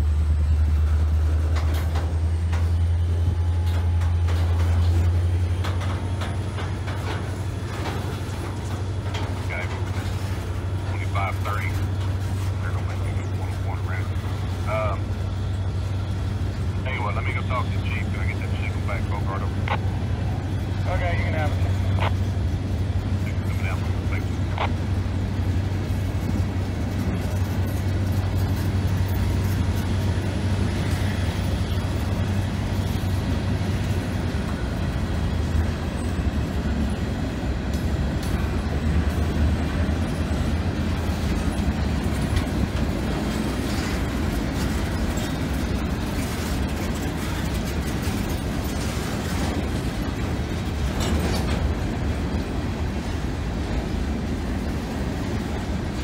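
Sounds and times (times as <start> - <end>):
train wheels rumbling on rail: 0.0 - 56.0
wheels clanking over rail joints: 0.0 - 56.0.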